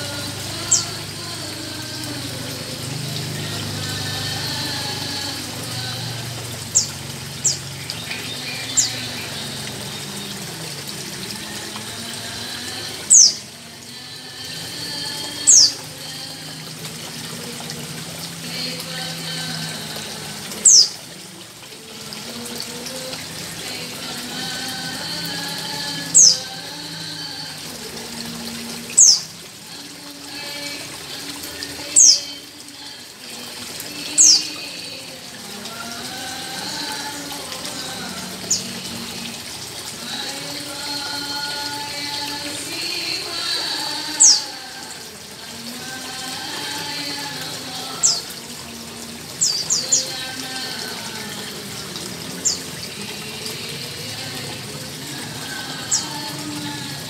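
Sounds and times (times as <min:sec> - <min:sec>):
aquarium filter water trickling: 0:00.0 - 0:57.0.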